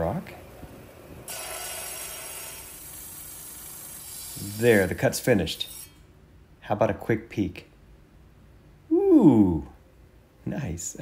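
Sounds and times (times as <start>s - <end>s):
rock saw running: 1.3s - 5.0s.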